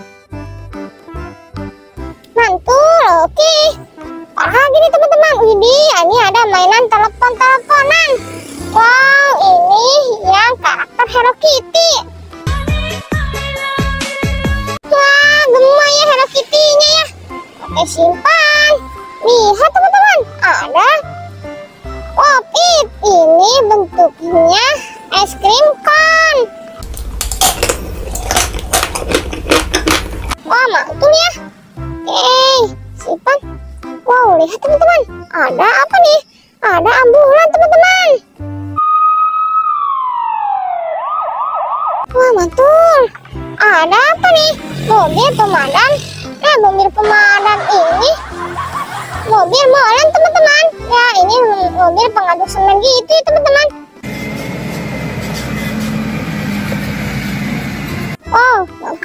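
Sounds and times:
crunching and chewing ice cream: 26.8 - 30.4
diesel engine running: 26.8 - 30.4, 54.0 - 58.2
low hum: 26.8 - 30.4
tyres on loose stones: 26.8 - 30.4
ambulance siren: 38.8 - 42.1.

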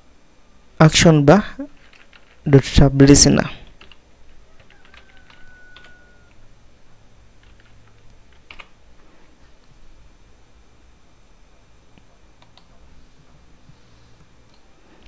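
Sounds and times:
person speaking: 0.8 - 3.8
computer keyboard typing: 1.7 - 2.5, 3.6 - 4.0, 4.6 - 6.0, 7.4 - 8.8, 12.4 - 12.8.

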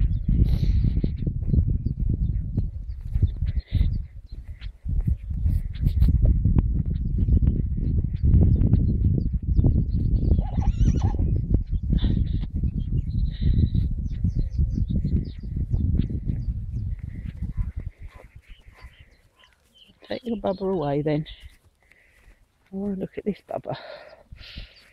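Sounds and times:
horse whinnying: 10.4 - 11.2.

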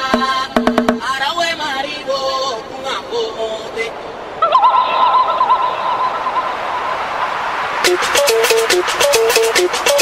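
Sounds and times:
warbling high call: 4.4 - 7.0.

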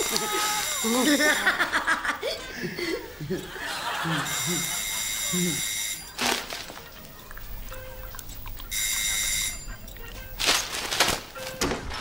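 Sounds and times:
electric doorbell ringing: 0.0 - 1.4, 4.3 - 6.1.

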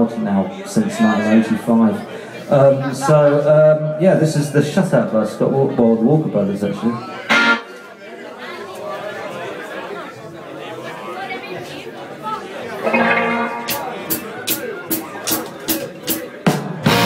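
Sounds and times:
crowd chatter: 0.0 - 17.0
drum kit ticking: 13.3 - 15.5.

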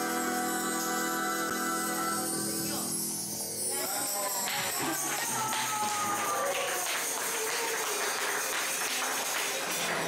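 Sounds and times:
person singing long notes: 0.0 - 3.0
tambourine-like jingling beat: 0.3 - 9.8.

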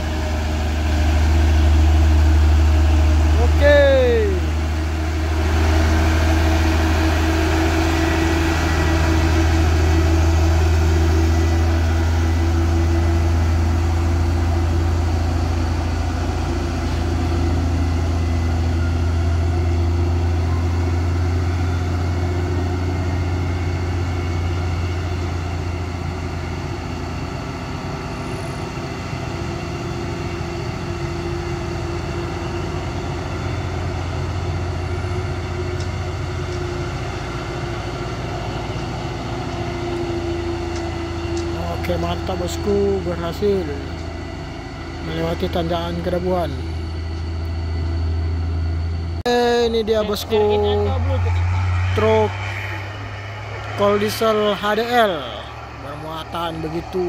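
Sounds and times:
truck diesel engine drone: 0.0 - 57.0.

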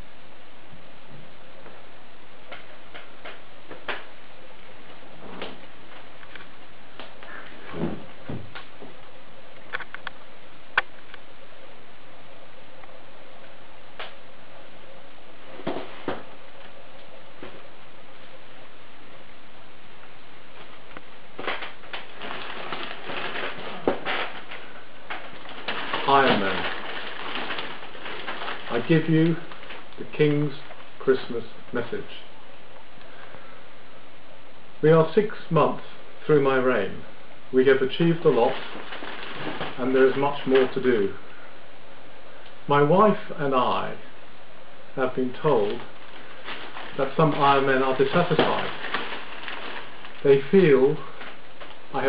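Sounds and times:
background hiss: 0.0 - 52.0.

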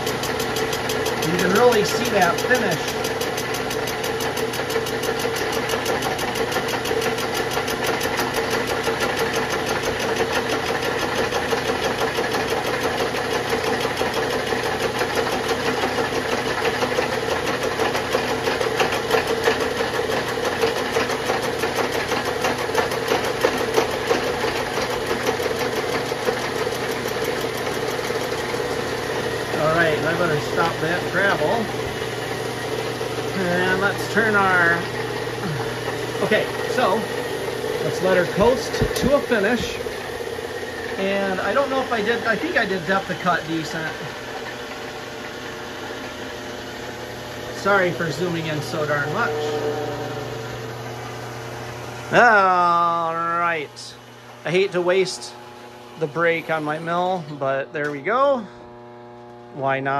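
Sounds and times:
milling machine drone: 0.0 - 59.9
phase converter hum: 0.0 - 59.9.

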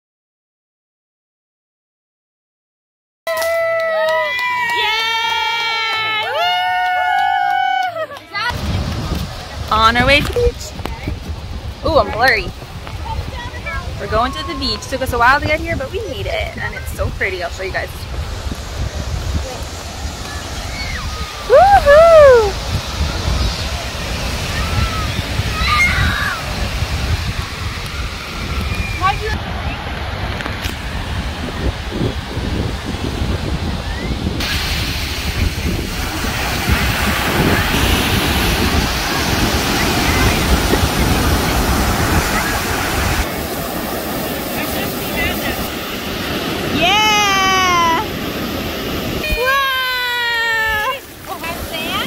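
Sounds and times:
ocean surf rushing: 3.9 - 52.0
waves washing on shore: 4.4 - 52.0
wind on microphone: 8.4 - 52.0.

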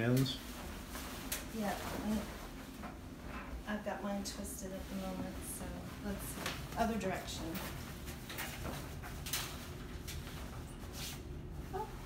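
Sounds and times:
sheet rustling: 0.2 - 12.0
fabric swishes: 0.5 - 2.7, 3.7 - 8.2.

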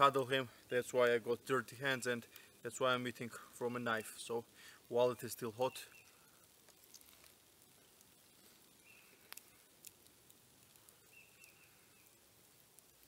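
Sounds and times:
distant bird chirps: 5.6 - 6.3, 8.7 - 9.3, 11.0 - 12.2.

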